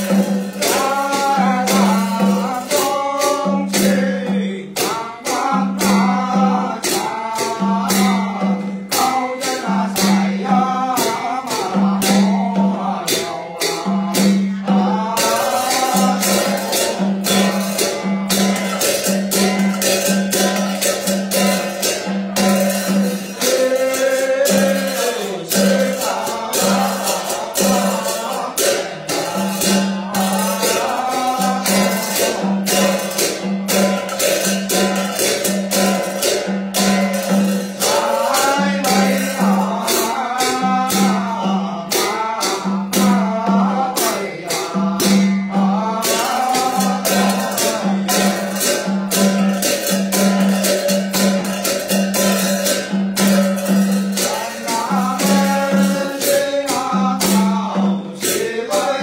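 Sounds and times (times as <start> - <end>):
person chanting: 0.0 - 59.0.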